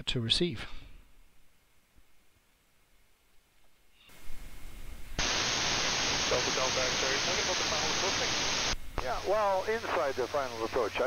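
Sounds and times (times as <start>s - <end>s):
radio static hiss: 5.1s - 11.0s.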